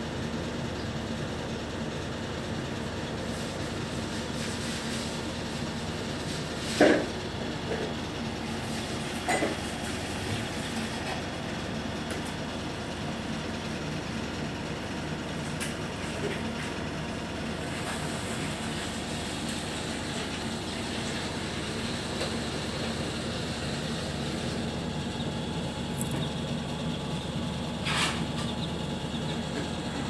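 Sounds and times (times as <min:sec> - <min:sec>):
faint hum: 0:19.8 - 0:30.0
low background rumble: 0:20.8 - 0:30.0.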